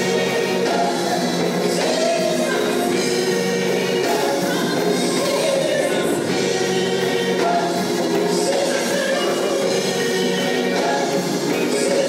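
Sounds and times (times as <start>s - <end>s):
band accompaniment: 0.0s - 12.0s
gospel choir singing: 0.0s - 12.0s
woman lead singer: 0.0s - 12.0s.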